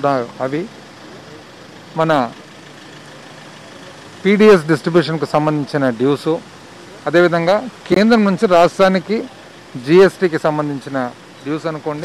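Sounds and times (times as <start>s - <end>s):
man speaking: 0.0s - 0.7s, 1.9s - 2.4s, 4.2s - 12.0s
outdoor background hiss: 0.0s - 12.0s.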